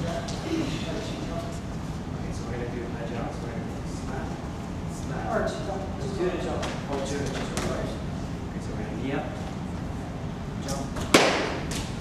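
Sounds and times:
sharp smack: 11.0s - 11.9s.

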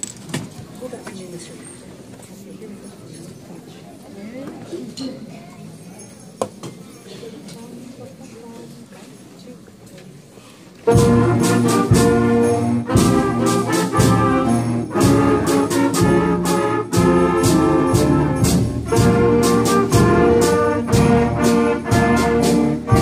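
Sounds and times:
brass sustained chords: 10.9s - 23.0s
sharp percussion strikes: 10.9s - 23.0s.

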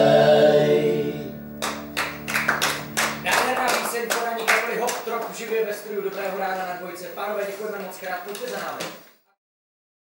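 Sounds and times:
acoustic guitar chord ringing: 0.0s - 3.8s
people clapping: 1.6s - 6.8s, 7.8s - 9.0s.

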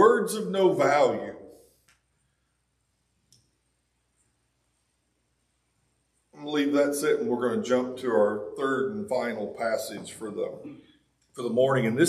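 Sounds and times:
faint click: 3.3s - 3.5s.

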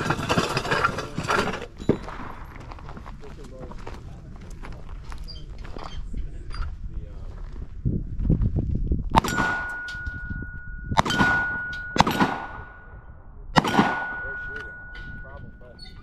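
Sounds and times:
gunshots: 9.2s - 10.2s, 10.9s - 15.2s
steel target ringing: 9.2s - 16.0s.

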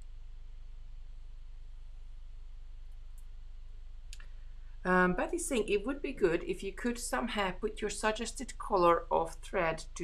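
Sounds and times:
steady low hum: 0.0s - 10.0s
woman saying um: 4.9s - 10.0s.

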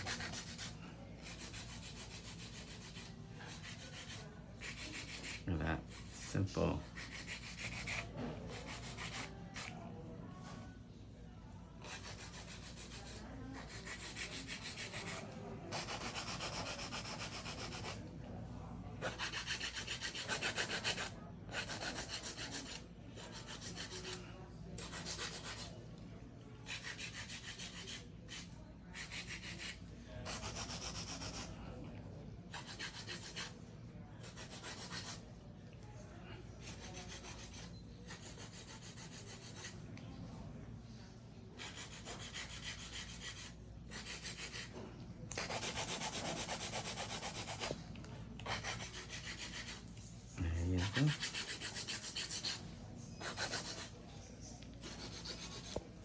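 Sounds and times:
nail file filing nails: 0.0s - 6.2s, 6.8s - 9.8s, 11.8s - 18.0s, 19.0s - 24.2s, 24.8s - 25.7s, 26.7s - 31.6s, 32.5s - 33.6s, 34.2s - 35.2s, 36.6s - 39.8s, 41.6s - 44.7s, 45.3s - 47.8s, 48.4s - 49.8s, 50.8s - 52.6s, 53.2s - 53.9s, 54.8s - 55.8s.

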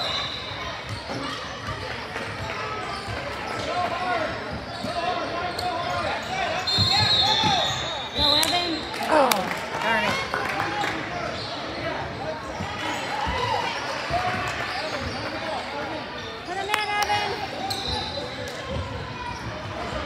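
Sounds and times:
referee's whistle: 0.0s - 1.1s, 6.5s - 9.1s, 17.6s - 18.4s.

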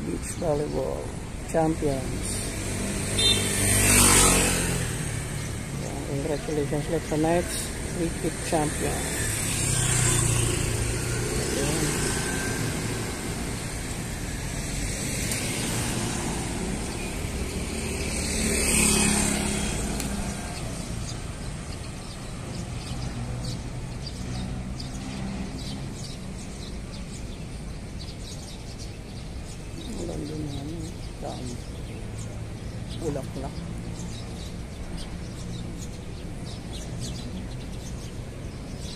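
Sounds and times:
motorcycles passing: 0.0s - 38.9s
road noise rumble: 0.0s - 38.9s.

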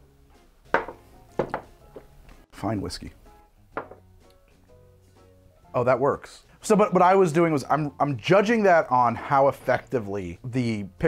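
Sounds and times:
quiet background music: 0.0s - 11.0s
shot glasses knocking on wood: 0.7s - 2.1s, 3.8s - 4.1s.

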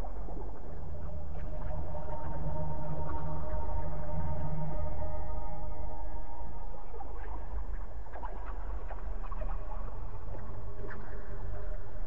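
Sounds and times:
steady low drone: 0.0s - 8.1s.

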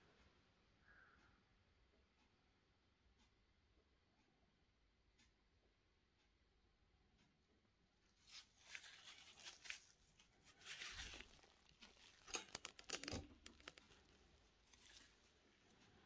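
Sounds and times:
gloved hands rustling: 8.1s - 16.0s.

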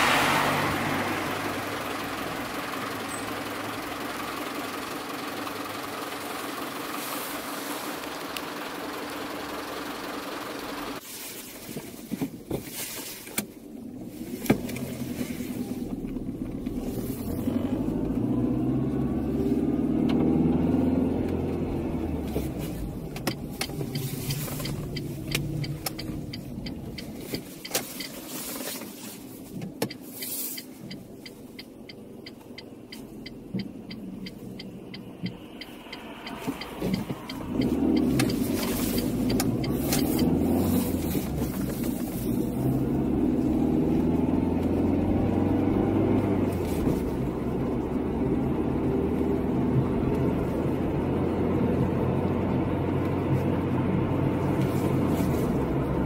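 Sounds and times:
car engine and road noise: 0.0s - 56.0s
light evenly spaced ticks: 23.3s - 28.5s, 29.9s - 40.5s.

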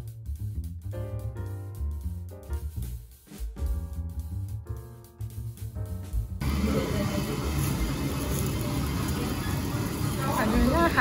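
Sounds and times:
restaurant room noise: 6.4s - 11.0s.

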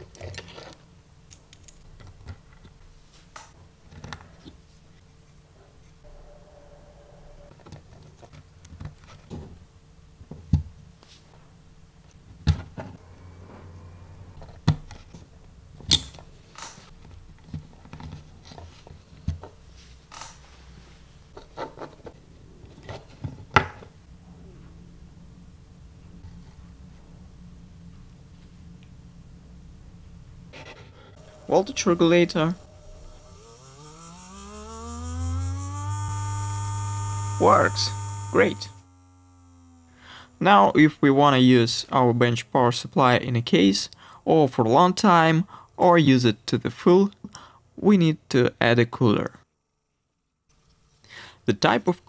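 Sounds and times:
low steady hum: 0.0s - 45.8s
small electric motor humming: 31.2s - 41.5s.

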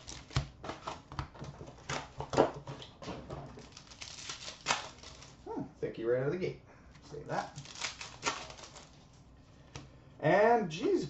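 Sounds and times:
card packs crinkling and rustling: 0.0s - 5.5s, 7.3s - 9.2s.

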